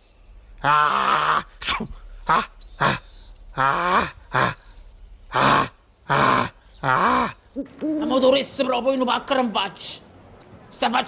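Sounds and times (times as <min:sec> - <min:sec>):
lion roaring in grunting calls: 0:02.2 - 0:07.8.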